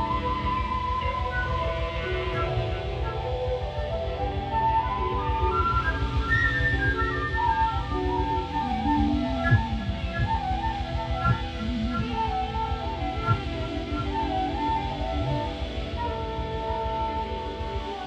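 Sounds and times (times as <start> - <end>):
flute melody: 0.0 - 18.0
jazz band playing: 0.0 - 18.0.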